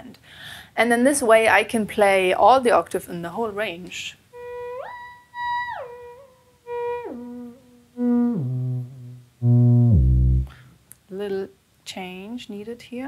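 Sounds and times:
theremin sliding notes: 4.4s - 10.5s.

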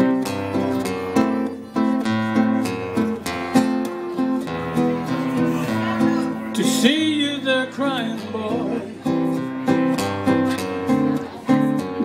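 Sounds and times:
acoustic guitar strumming: 0.0s - 12.0s
man's voice: 5.3s - 9.1s.

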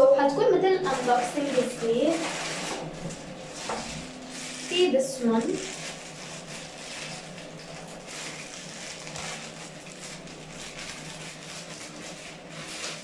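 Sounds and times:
steady low hum: 0.0s - 13.0s
plastic packaging crinkling: 0.8s - 13.0s.

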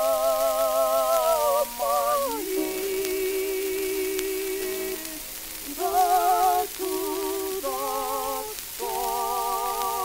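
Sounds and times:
record hiss and crackle: 0.0s - 10.0s
soprano and tenor singing duet: 0.0s - 10.0s.

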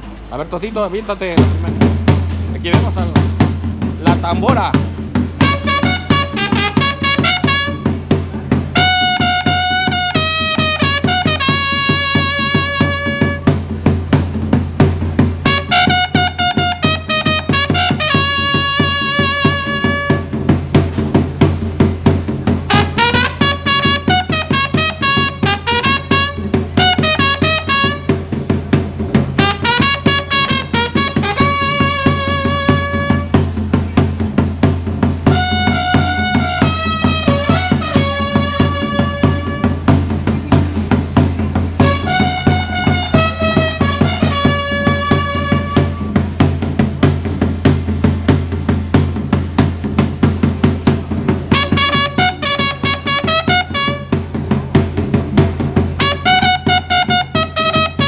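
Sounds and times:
bass drum beat: 0.0s - 58.0s
trumpet playing a tune: 5.4s - 8.1s, 8.7s - 13.7s, 15.4s - 20.5s, 22.6s - 28.4s, 29.3s - 33.4s, 35.2s - 40.0s, 41.8s - 46.2s, 51.4s - 54.4s, 56.0s - 58.0s.

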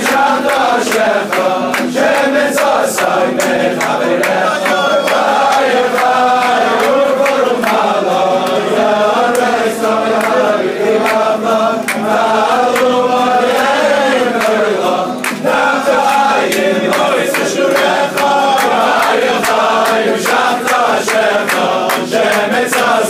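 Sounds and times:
crowd of men singing: 0.0s - 23.0s
hand claps: 0.0s - 23.0s.

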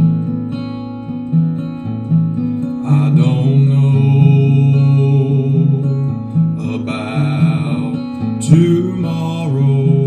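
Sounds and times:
strummed acoustic guitar: 0.0s - 10.0s
man singing: 2.7s - 10.0s.

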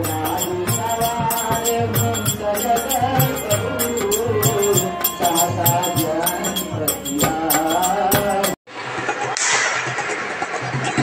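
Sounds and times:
music playing: 0.0s - 9.1s
outdoor gathering noise: 0.0s - 11.0s.

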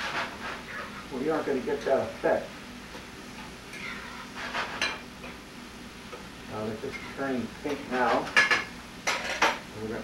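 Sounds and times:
utensil scraping metal skillet: 3.7s - 5.0s.

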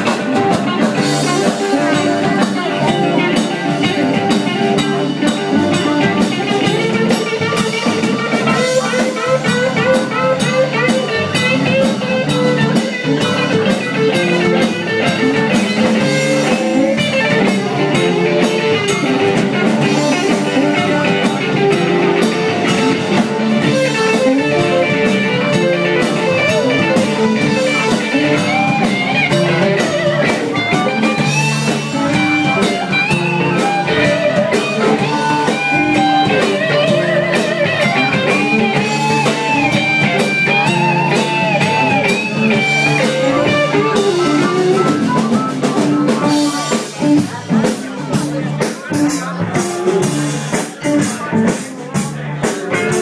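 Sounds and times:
blues band playing: 0.0s - 53.0s
electric guitar lead bent notes: 0.0s - 53.0s.

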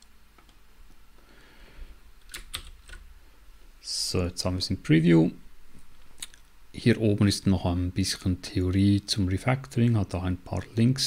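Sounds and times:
computer keyboard keystrokes: 2.3s - 3.0s.

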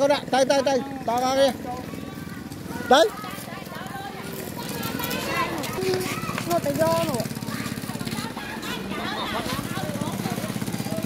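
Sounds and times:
children's voices chatter: 0.0s - 11.0s.

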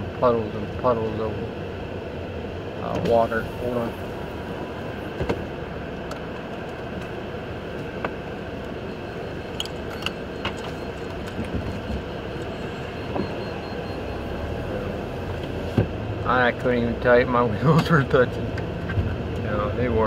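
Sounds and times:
air conditioning blowing: 0.0s - 20.0s
tyre and road rumble: 0.8s - 20.0s.

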